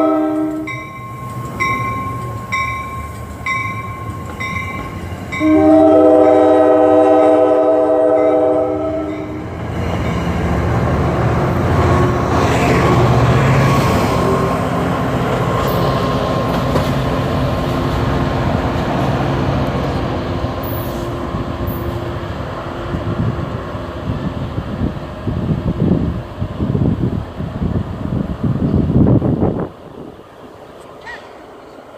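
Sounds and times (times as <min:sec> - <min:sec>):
train horn chord: 0:00.0 - 0:00.9, 0:05.3 - 0:09.5
train engine and wheels rumbling: 0:00.0 - 0:31.9
wind buffeting microphone: 0:21.2 - 0:30.6.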